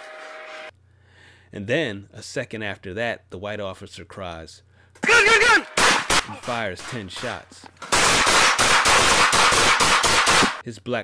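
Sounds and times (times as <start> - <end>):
handguns firing rapid shots: 5.8 - 10.6.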